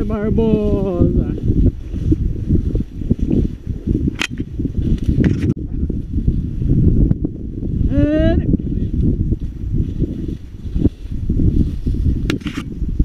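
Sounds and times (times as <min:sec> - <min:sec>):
wind buffeting microphone: 0:00.0 - 0:13.0
sharp click: 0:04.1 - 0:04.5
plants rustling against footsteps: 0:08.7 - 0:12.9.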